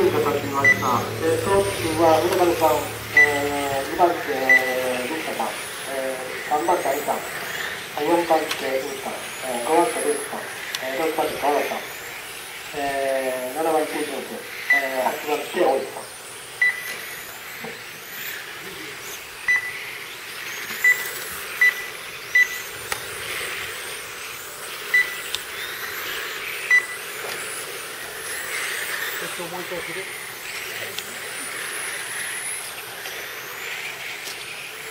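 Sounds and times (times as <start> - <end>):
electric motors whining: 0.0 - 34.9
short high beeps: 0.4 - 1.1, 3.1 - 3.6.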